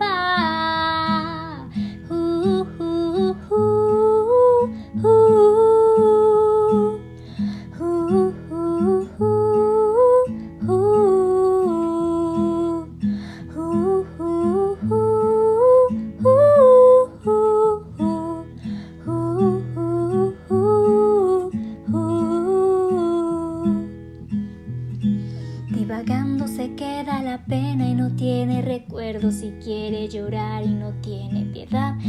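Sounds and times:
acoustic guitar strumming: 0.0 - 32.0.

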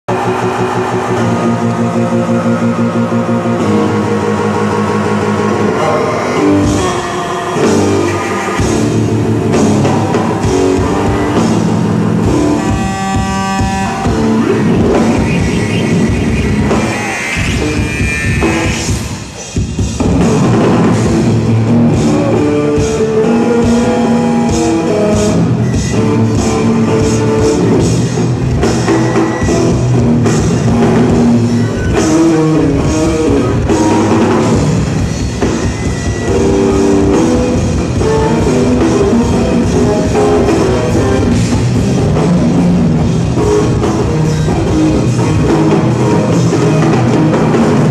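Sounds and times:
electric bass guitar: 0.0 - 47.9
drum kit playing: 0.1 - 47.9.

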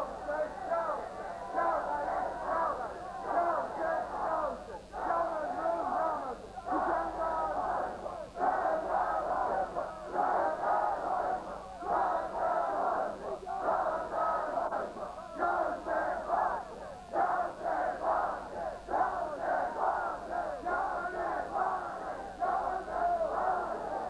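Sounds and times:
crowd of men chanting: 0.0 - 24.0.

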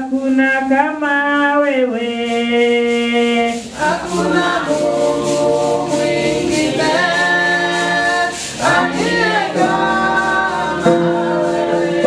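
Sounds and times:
woman singing into a microphone: 3.8 - 12.0.

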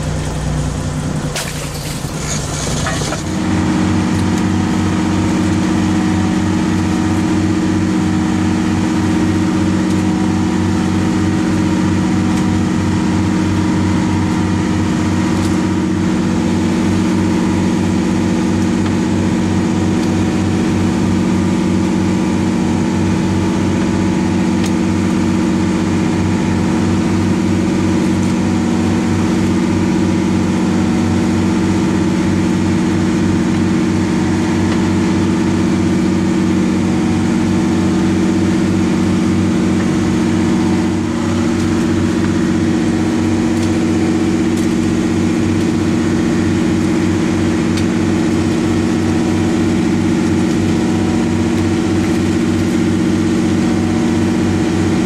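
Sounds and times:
boat engine running: 0.0 - 55.0.

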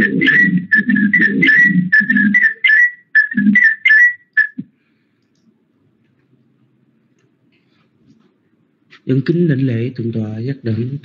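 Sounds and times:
short high-pitched tune: 0.0 - 4.6.

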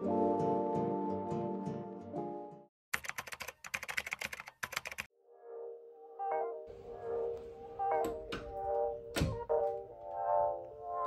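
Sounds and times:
background music: 0.0 - 2.7, 5.3 - 11.0
soft music: 0.0 - 2.7, 5.2 - 11.0
rapid keyboard typing clicks: 2.9 - 5.1.

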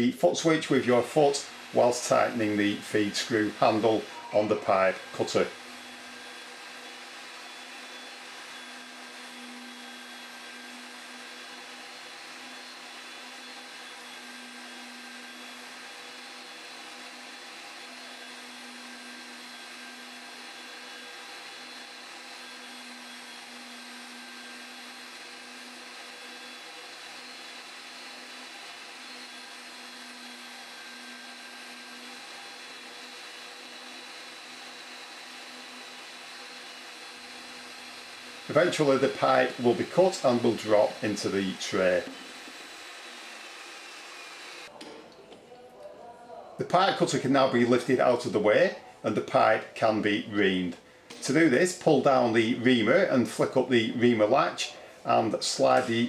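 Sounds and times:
motor humming: 0.0 - 44.8.

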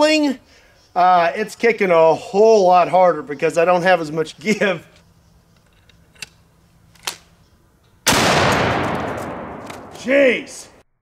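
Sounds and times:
rifle shot: 8.1 - 10.1.

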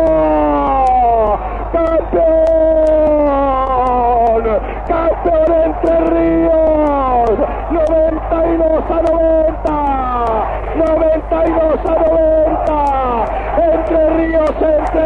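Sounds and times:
sports commentator shouting: 0.0 - 15.0.

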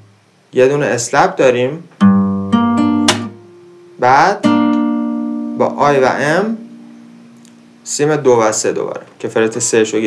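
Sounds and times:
classical guitar fingerpicked: 2.0 - 7.8
hand slapping guitar strings: 3.0 - 3.4.

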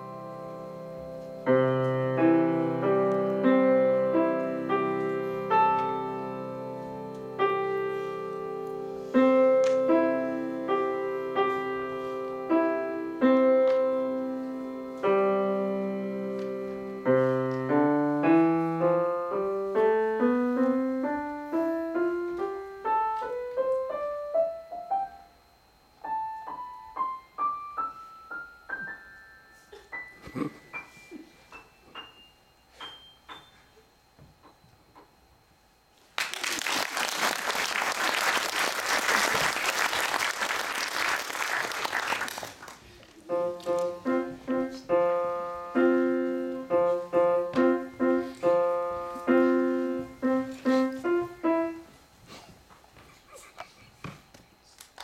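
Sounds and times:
grand piano playing: 0.0 - 25.2, 43.3 - 51.9.

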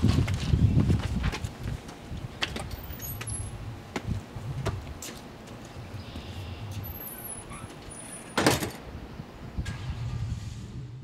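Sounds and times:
low outdoor rumble: 8.7 - 11.0.

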